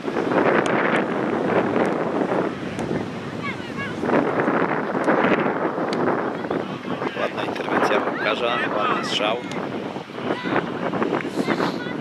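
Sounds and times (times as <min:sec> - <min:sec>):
wind buffeting microphone: 0:00.0 - 0:12.0
voices of spectators and players: 0:01.5 - 0:12.0.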